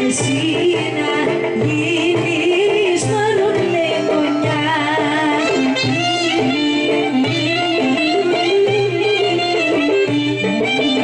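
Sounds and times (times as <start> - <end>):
folk band playing dance tune: 0.0 - 11.0.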